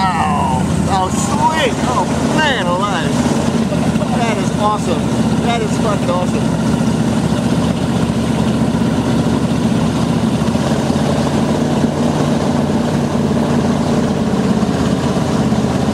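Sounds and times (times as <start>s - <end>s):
motorboat engine running: 0.0s - 15.9s
water rushing past hull: 0.0s - 15.9s.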